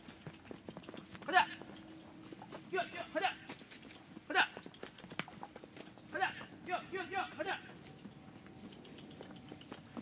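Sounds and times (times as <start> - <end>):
pony hooves trotting on dirt: 0.0 - 10.0.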